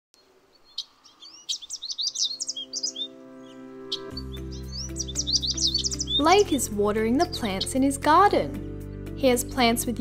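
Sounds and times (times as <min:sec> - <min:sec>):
small songbirds chirping: 0:00.2 - 0:08.6
gentle background music: 0:00.8 - 0:10.0.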